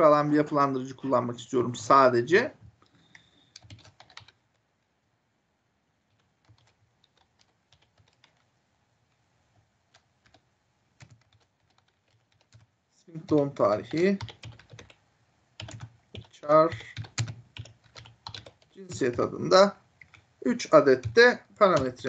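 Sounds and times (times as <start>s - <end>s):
faint keyboard typing: 2.6s - 5.0s, 6.0s - 22.0s.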